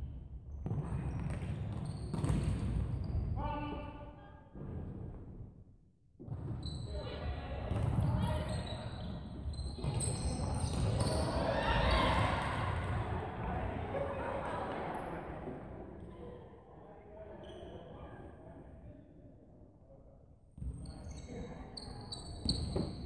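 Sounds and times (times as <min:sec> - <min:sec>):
players' voices echoing: 0:09.8 - 0:16.4.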